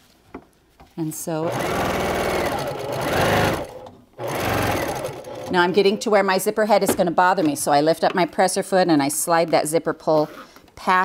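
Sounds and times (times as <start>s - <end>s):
sewing machine stitching: 1.4s - 6.0s.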